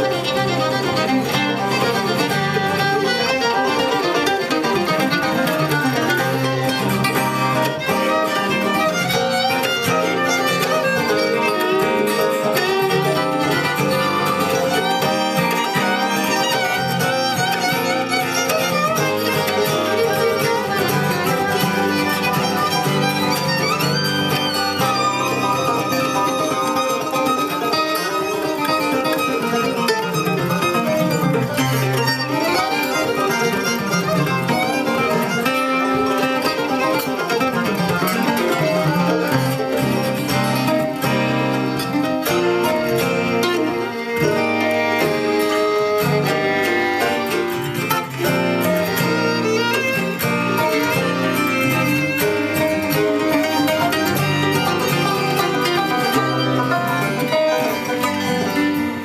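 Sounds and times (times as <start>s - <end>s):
banjo: 0.0s - 59.0s
fiddle: 0.0s - 59.0s
mandolin: 0.0s - 59.0s.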